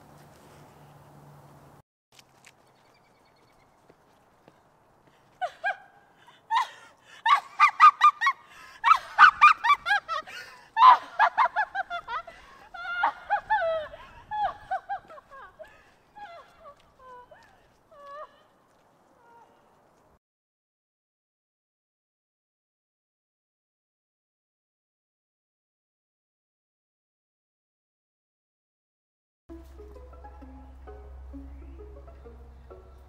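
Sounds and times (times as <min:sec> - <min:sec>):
geese honking: 0:29.6 - 0:33.0.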